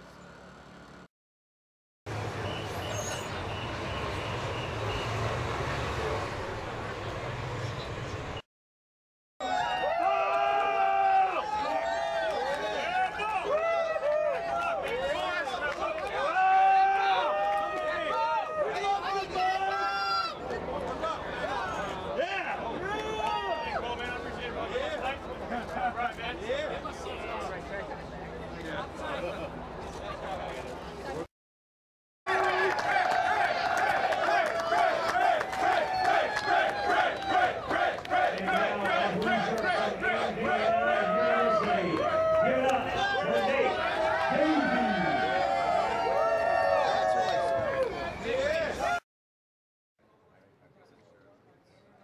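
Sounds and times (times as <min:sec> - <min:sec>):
low street noise: 0:00.0 - 0:01.1, 0:02.1 - 0:08.4, 0:09.4 - 0:31.3, 0:32.3 - 0:49.0, 0:50.0 - 0:52.0
crowd talking and calling out: 0:17.8 - 0:31.3, 0:33.8 - 0:49.0.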